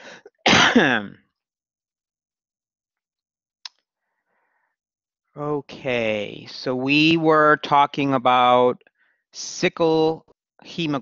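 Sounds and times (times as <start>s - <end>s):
faint breath: 0.0s - 0.3s, 3.9s - 4.8s, 8.9s - 9.3s
person clearing throat: 0.3s - 1.2s.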